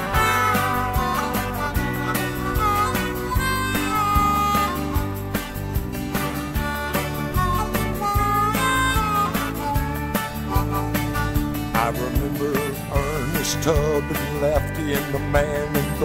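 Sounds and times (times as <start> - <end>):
bass: 0.0 - 16.0
guitar: 0.0 - 16.0
harmonica lead: 0.0 - 16.0
steady drum beat: 0.0 - 16.0.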